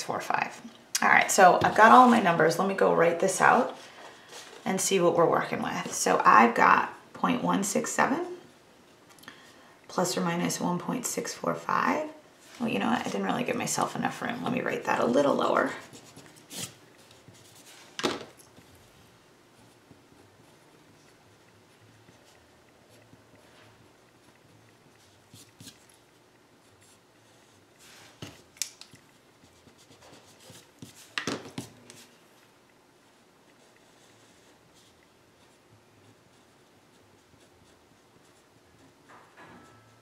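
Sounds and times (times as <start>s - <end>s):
pen scratching on paper: 29.1s - 32.0s, 33.6s - 39.0s.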